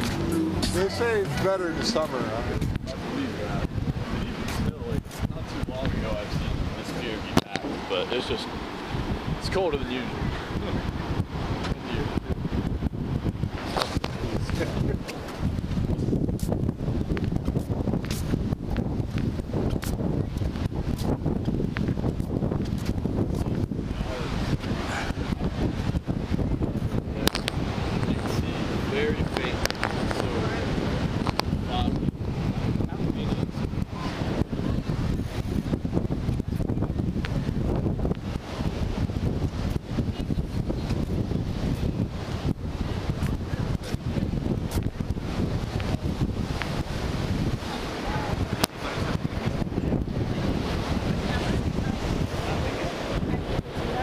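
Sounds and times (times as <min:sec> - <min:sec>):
ocean surf: 0:00.0 - 0:54.0
wind buffeting microphone: 0:00.0 - 0:54.0.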